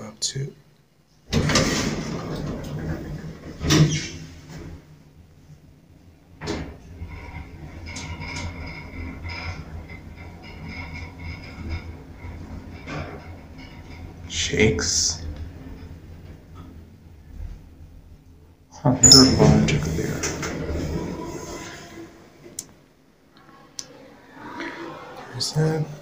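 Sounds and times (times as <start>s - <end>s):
elevator doors sliding shut: 1.3s - 5.3s, 6.0s - 17.4s, 18.8s - 22.8s
elevator travelling hum: 1.3s - 26.0s.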